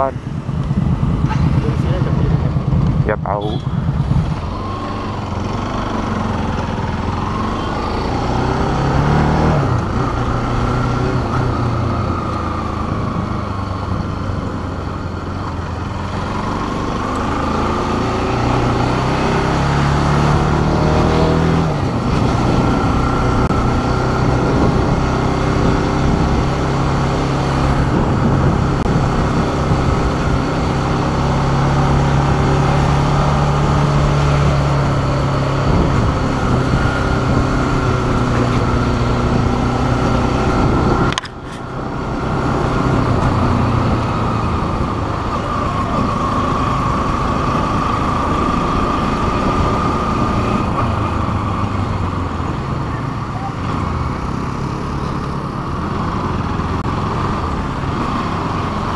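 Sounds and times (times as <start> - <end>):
motorcycle engine running: 0.0 - 58.9.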